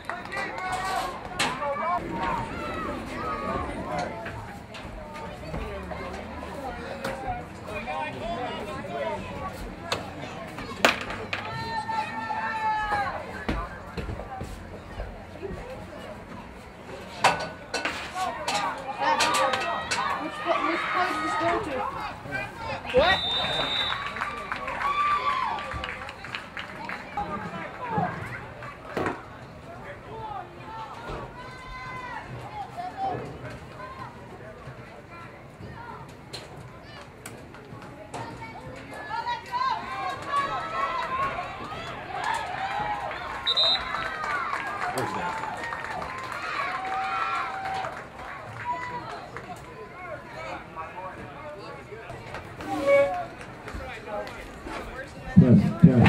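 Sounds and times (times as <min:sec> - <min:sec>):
short high whistle: 0:23.0 - 0:24.0, 0:43.5 - 0:44.0.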